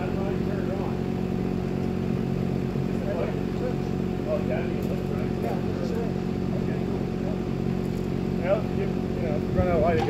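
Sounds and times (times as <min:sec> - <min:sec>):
diesel engine running: 0:00.0 - 0:10.0.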